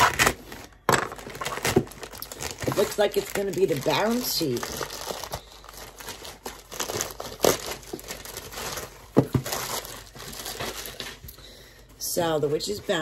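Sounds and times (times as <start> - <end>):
plastic mailer bag crinkling: 0.0 - 11.3.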